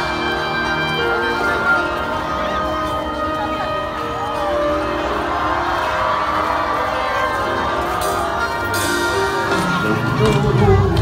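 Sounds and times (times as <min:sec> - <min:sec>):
crowd cheering: 0:00.0 - 0:11.0
crowd voices: 0:00.0 - 0:11.0
live band playing ballad: 0:00.0 - 0:11.0.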